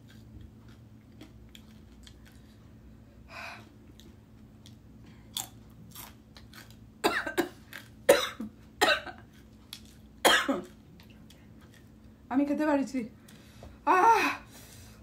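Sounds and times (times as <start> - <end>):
woman chewing: 0.0 - 2.9, 3.6 - 6.9, 9.2 - 12.1
woman coughing sharply: 7.0 - 9.2, 10.2 - 10.7.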